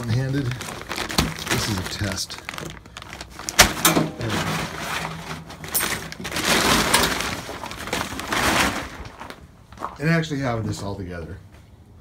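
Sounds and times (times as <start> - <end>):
plastic tarp crinkling and rustling: 0.0 - 10.2
loud crack: 3.4 - 9.3.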